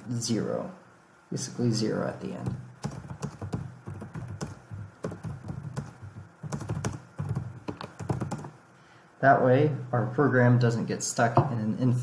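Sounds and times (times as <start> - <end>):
typing on computer keyboard: 2.4 - 8.6.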